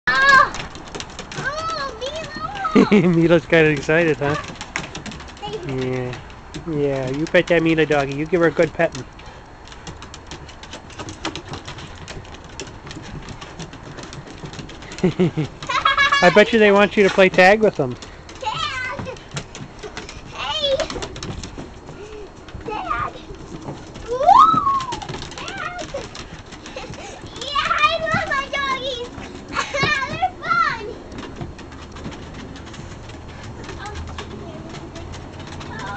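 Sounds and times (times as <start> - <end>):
child squealing: 0.1 - 0.6, 24.1 - 26.0
dog whining: 24.1 - 26.1.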